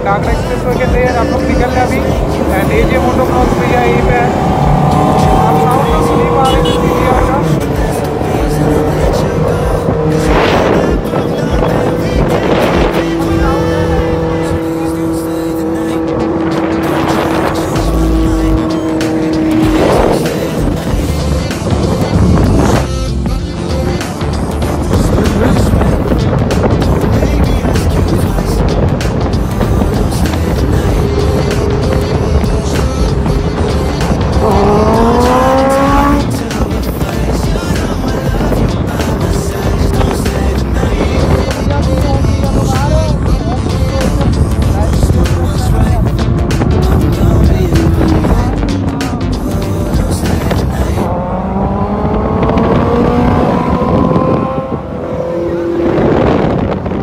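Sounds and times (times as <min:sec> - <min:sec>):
motorcycle engines cruising: 0:00.0 - 0:57.0
vehicles whooshing past: 0:00.0 - 0:57.0
wind rush: 0:00.0 - 0:57.0.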